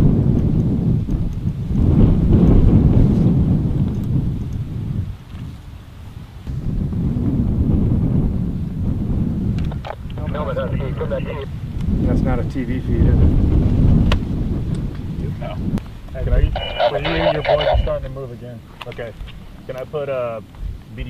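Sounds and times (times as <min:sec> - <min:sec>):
jet aircraft rumble overhead: 0:00.0 - 0:21.0.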